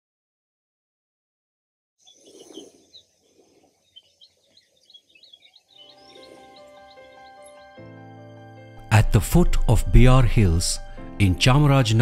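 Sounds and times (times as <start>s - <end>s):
small birds chirping: 2.0s - 7.9s
soft music with held notes: 5.8s - 12.0s.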